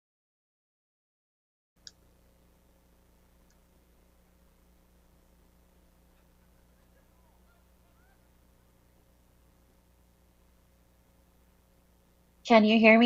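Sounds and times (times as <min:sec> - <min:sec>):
faint electrical hum: 0:01.8 - 0:13.0.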